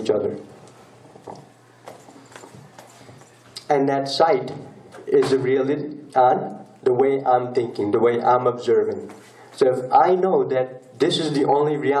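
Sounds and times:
low steady room hum: 0.0s - 12.0s.

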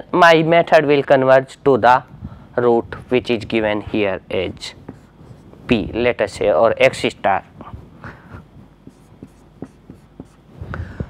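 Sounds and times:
marker writing on whiteboard: 4.6s - 5.8s, 8.7s - 10.5s.

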